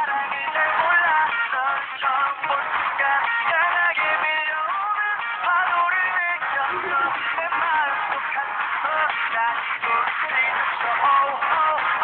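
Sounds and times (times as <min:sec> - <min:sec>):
pop song with auto-tuned vocals: 0:00.0 - 0:12.0.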